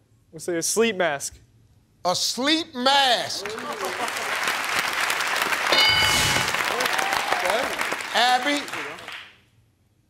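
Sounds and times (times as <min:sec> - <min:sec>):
audience applauding: 0:03.3 - 0:09.4
reveal chime ringing: 0:05.7 - 0:06.7.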